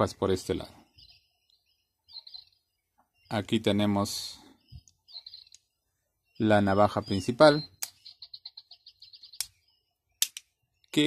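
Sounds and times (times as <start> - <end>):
fast even chirping: 6.3 - 9.8.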